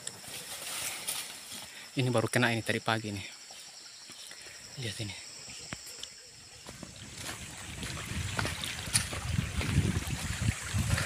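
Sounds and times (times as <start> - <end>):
stream running: 2.8 - 5.1, 6.6 - 11.0
heavy footsteps on leaf litter: 6.7 - 10.3.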